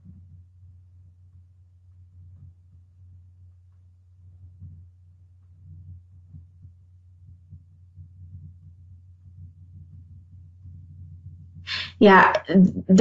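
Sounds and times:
low electrical hum: 0.0 - 13.0
soft low thumps: 0.0 - 13.0.

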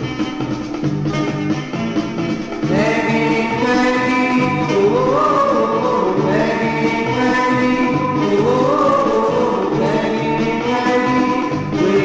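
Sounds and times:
pulsing bass line: 0.0 - 12.0
vocal group close harmony singing: 2.7 - 12.0.

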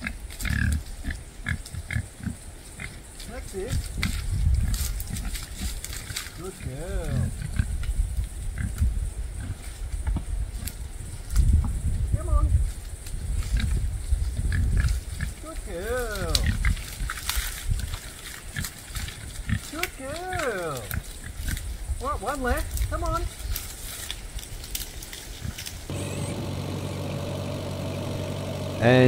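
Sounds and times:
pigs foraging: 0.0 - 29.0
low uneven rumble: 25.9 - 29.0.

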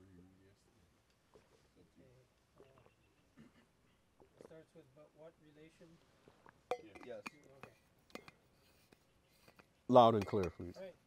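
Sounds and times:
metal water bottle clinking: 6.7 - 10.8.

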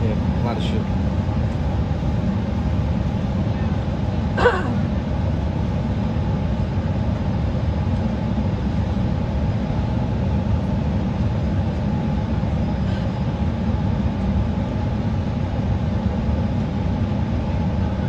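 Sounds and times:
airliner cabin rumble: 0.0 - 18.0.

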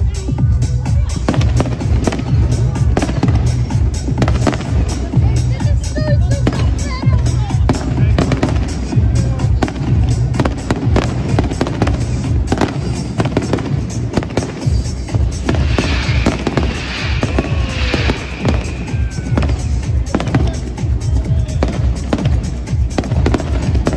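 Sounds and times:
bass-heavy music: 0.0 - 23.9
fireworks bangs and crackles: 0.0 - 23.9.

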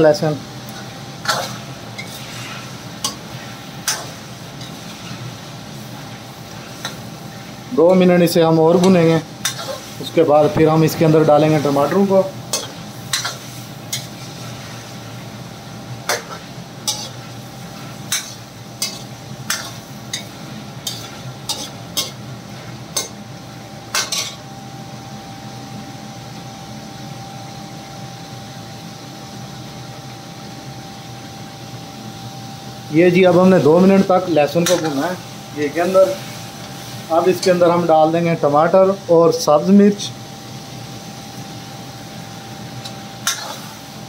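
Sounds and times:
chicken sizzling in pan: 0.0 - 44.0.

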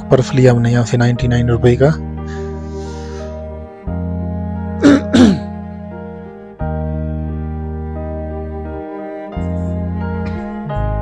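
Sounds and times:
person coughing: 4.8 - 5.5.

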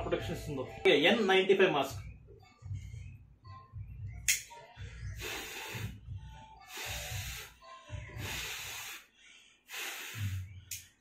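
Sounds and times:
breaths blown through face mask: 5.0 - 10.7.

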